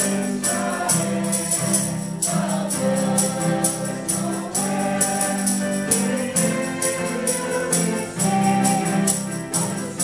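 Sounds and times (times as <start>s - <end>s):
choir singing gospel: 0.0s - 10.0s
keyboard: 0.0s - 10.0s.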